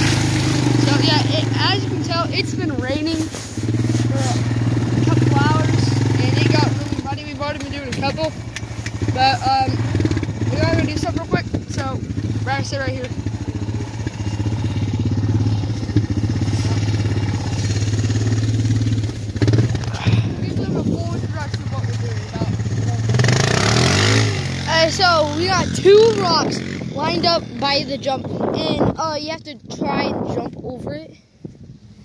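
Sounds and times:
atv engine idling: 0.0s - 31.1s
voices: 0.0s - 31.2s.

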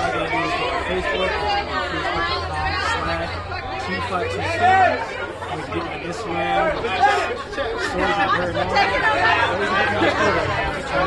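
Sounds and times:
chatter of voices: 0.0s - 11.0s
man talking: 0.0s - 11.0s.

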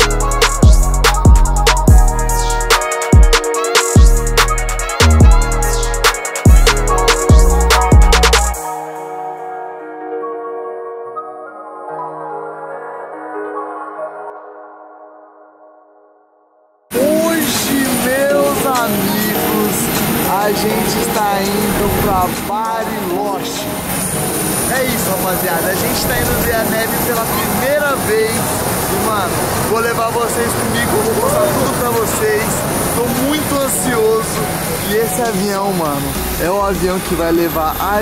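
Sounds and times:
people talking: 16.9s - 23.6s, 24.7s - 38.0s
engine noise: 16.9s - 38.0s.

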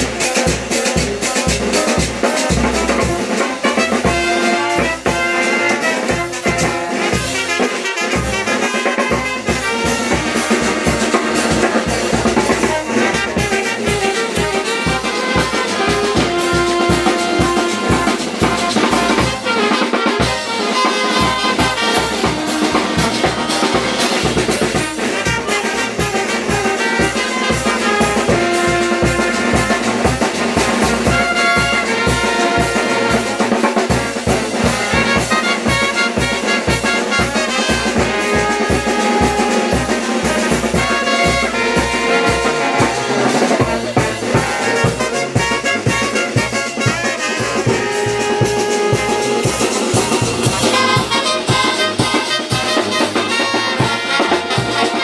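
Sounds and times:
bass drum and cymbal beat: 0.0s - 55.0s
brass band playing dance tune: 0.0s - 55.0s
snare drum: 0.0s - 55.0s.

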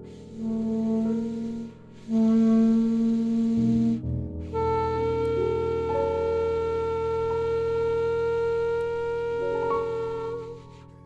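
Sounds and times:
piano notes ringing: 0.0s - 11.0s
wind instrument long note: 0.0s - 11.0s.

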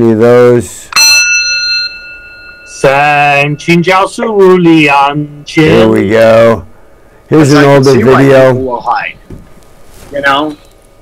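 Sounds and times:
bell chime ringing: 0.9s - 5.1s.

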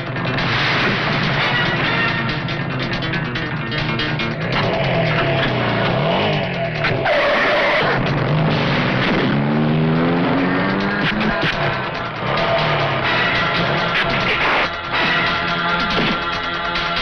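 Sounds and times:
dramatic film music: 0.0s - 17.0s
motorcycle engine revving: 0.0s - 17.0s
tyres skidding: 0.0s - 17.0s.

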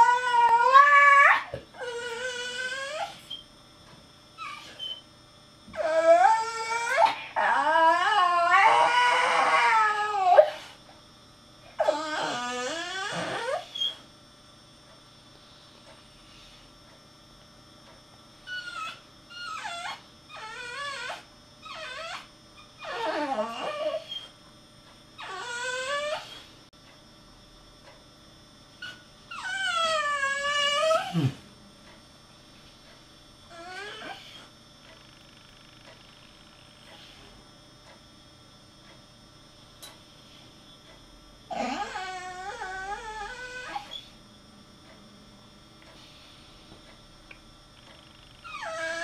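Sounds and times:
dog whining and whimpering: 0.0s - 3.5s, 4.4s - 5.1s, 5.7s - 10.8s, 11.6s - 14.1s, 18.4s - 24.4s, 25.2s - 26.6s, 28.8s - 31.4s, 33.5s - 34.5s, 41.5s - 44.2s, 48.2s - 49.0s.

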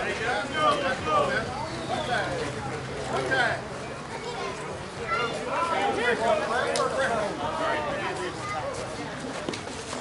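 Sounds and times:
faint chatter: 0.0s - 10.0s.

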